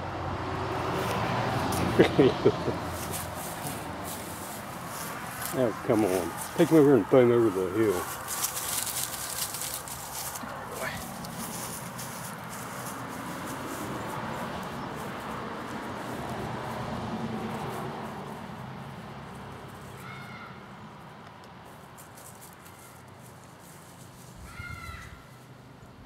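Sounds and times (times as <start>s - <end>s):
outdoor background noise: 0.0s - 26.0s
footsteps on grass: 0.6s - 25.7s
brushing and rustling: 0.7s - 25.7s.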